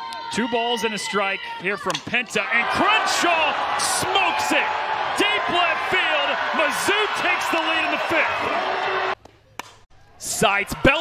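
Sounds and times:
crowd cheering and shouting: 0.0s - 9.2s, 10.2s - 11.0s.

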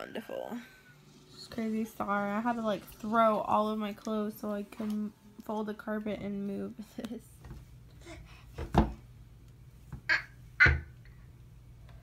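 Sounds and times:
baby squawking: 10.1s - 11.0s.

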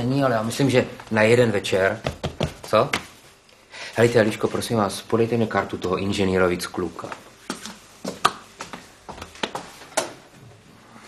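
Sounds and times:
objects knocking and clicking on desk: 2.0s - 3.1s.

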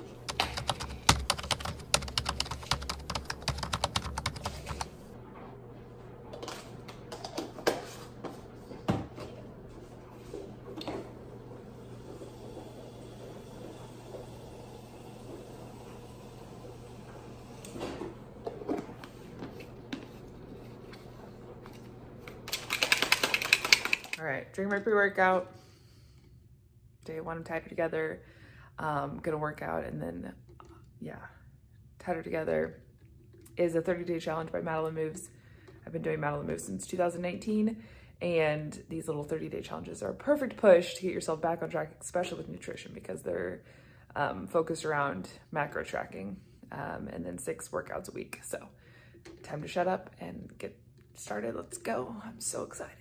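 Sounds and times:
small hard objects clicking and rattling: 22.5s - 24.2s.

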